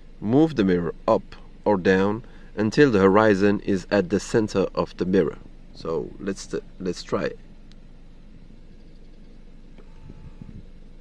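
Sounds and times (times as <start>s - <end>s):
electric mirror motor whine: 0.0s - 11.0s
low rumble in car cabin: 0.0s - 11.0s.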